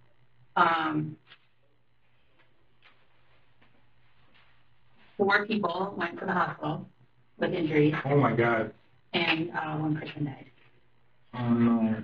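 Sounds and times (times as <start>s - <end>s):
steady low hum: 0.0s - 12.0s
man saying um: 8.0s - 8.7s, 11.4s - 12.0s.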